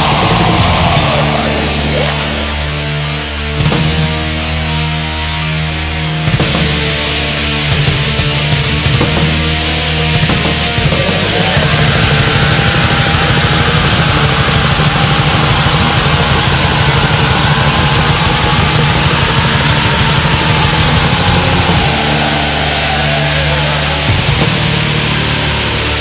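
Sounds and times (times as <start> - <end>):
black metal band playing: 0.0 - 26.0.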